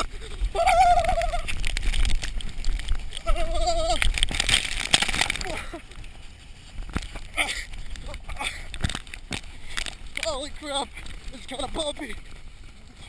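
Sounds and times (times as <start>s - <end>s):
body sliding on snow: 0.0s - 13.0s.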